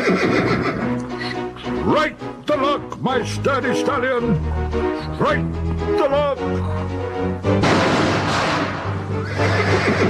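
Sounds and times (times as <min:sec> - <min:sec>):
horse whinnying: 0:00.0 - 0:01.4, 0:09.1 - 0:10.0
background music: 0:00.0 - 0:10.0.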